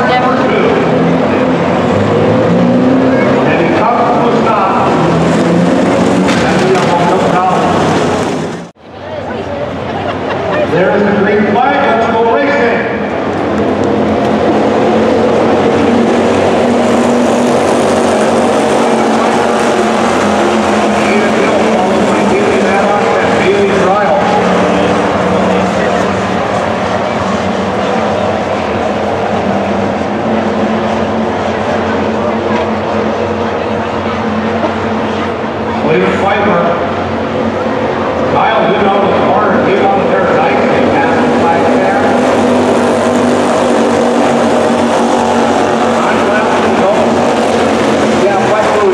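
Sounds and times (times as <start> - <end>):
race car engines running hard: 0.0 - 48.9.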